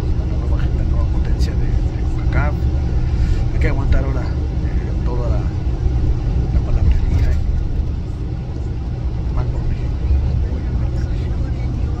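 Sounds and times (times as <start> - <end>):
bus rumble from inside cabin: 0.0 - 12.0
faint voices: 6.5 - 12.0.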